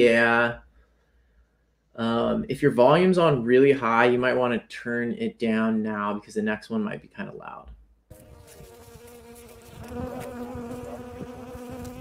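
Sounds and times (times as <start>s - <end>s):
bee buzzing: 8.1s - 12.0s.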